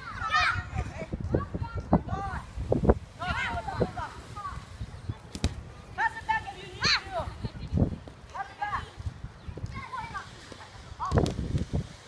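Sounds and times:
children calling out: 0.0s - 1.6s.

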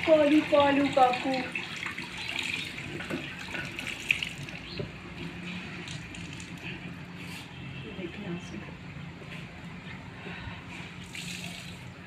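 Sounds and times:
water running from a tap: 0.0s - 5.2s, 11.0s - 11.9s.

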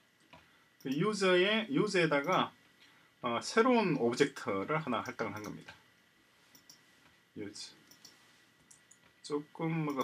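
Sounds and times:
faint keyboard clicks: 5.0s - 5.8s, 7.8s - 9.2s.

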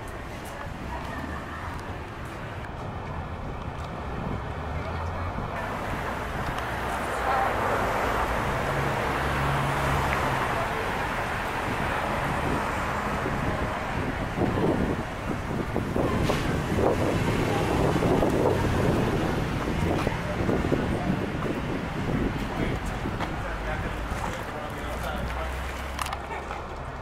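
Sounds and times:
wind blowing across microphone: 0.0s - 26.1s.

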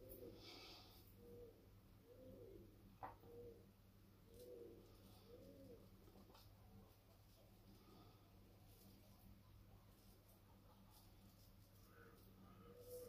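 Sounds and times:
pigeon cooing: 0.0s - 8.2s, 10.4s - 13.0s.

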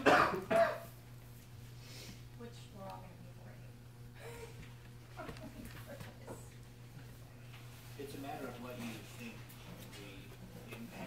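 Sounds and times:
person coughing: 0.0s - 0.9s
steady low hum: 0.0s - 11.0s.

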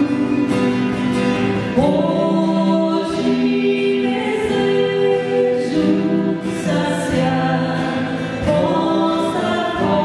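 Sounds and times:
acoustic guitar: 0.0s - 10.0s
woman and man singing a hymn: 1.8s - 10.0s.

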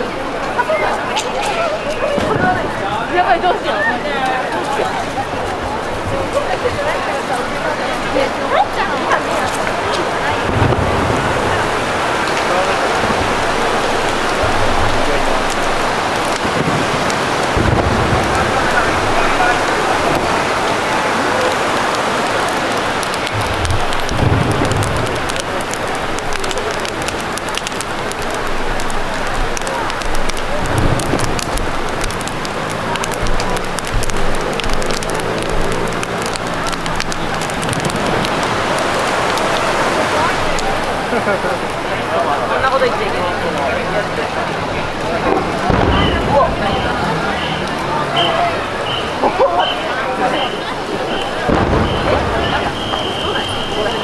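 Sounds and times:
people's voices: 0.0s - 54.0s
turbulent river water rushing: 0.0s - 54.0s.

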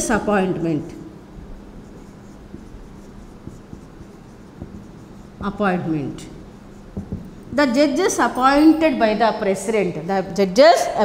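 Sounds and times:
marker rubbing on whiteboard: 1.4s - 8.3s
marker tapping whiteboard: 1.8s - 7.6s.

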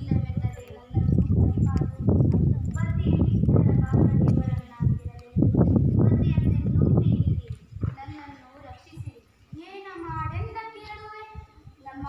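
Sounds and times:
heavy low rumble: 0.0s - 8.1s.

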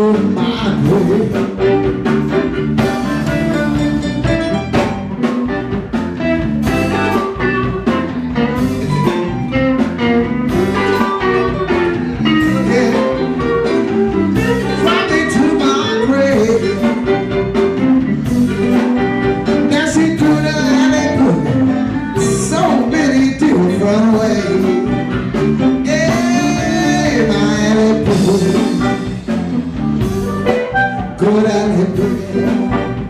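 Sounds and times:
person singing: 0.0s - 1.9s, 10.5s - 17.8s, 18.7s - 29.2s, 30.6s - 33.0s
bass guitar: 0.0s - 33.0s
drum kit: 0.0s - 33.0s
electric guitar: 0.0s - 33.0s.

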